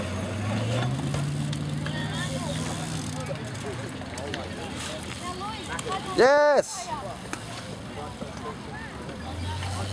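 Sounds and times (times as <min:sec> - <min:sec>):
distant people talking and calling: 0:00.0 - 0:09.9
steady background noise: 0:00.0 - 0:09.9.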